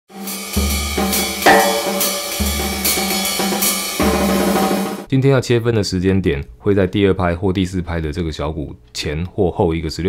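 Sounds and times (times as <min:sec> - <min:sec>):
hi-hat and cymbal strokes: 0:00.1 - 0:05.1
bass drum hits: 0:00.6 - 0:04.3
snare drum hit: 0:00.6 - 0:05.1.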